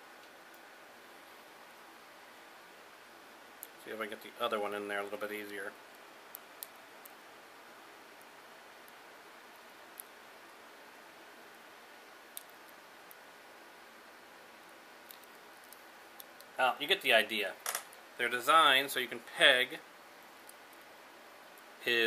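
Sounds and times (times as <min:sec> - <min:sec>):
steady low hiss: 0:00.0 - 0:22.0.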